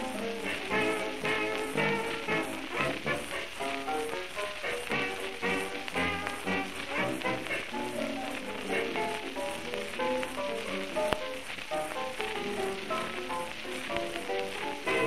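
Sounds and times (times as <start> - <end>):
record surface hiss and crackle: 0.0 - 15.0.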